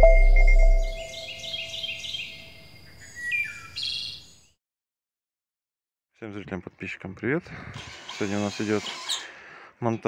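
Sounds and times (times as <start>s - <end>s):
bird chirping: 0.0s - 4.6s.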